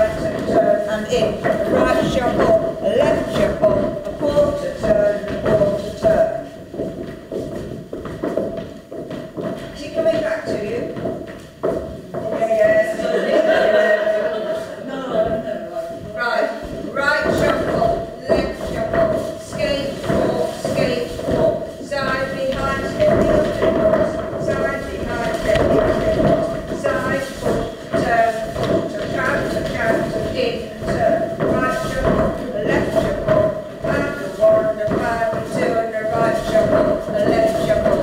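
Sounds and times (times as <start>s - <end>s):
person talking: 0.0s - 6.6s, 9.8s - 11.1s, 12.1s - 38.0s
feet shuffling on wooden floor: 0.0s - 38.0s.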